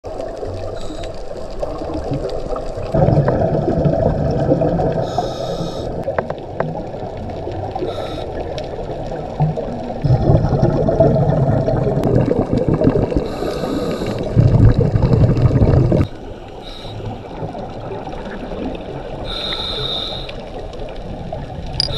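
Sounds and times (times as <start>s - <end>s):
exhaled bubbles rumbling: 0.1s - 19.4s, 20.4s - 21.9s
muffled underwater noise: 11.4s - 21.9s.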